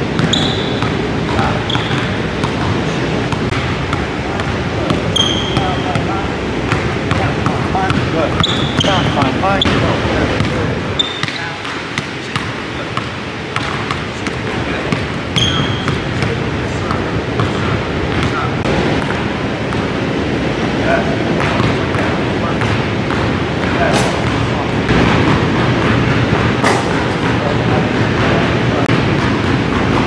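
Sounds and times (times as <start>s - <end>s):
sneaker squeaks: 0.0s - 4.0s, 4.8s - 14.3s, 14.9s - 16.4s
basketball bouncing on wooden floor: 0.1s - 6.0s, 10.4s - 16.3s, 16.9s - 18.4s, 21.4s - 30.0s.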